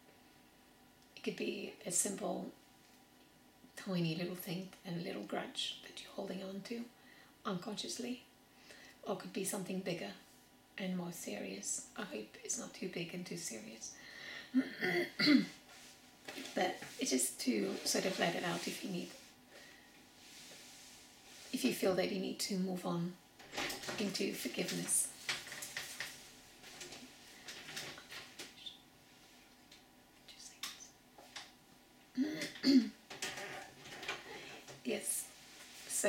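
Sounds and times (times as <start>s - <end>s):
breathy exhale: 14.0s - 14.5s
woman clearing throat: 14.6s - 15.6s, 32.2s - 33.0s.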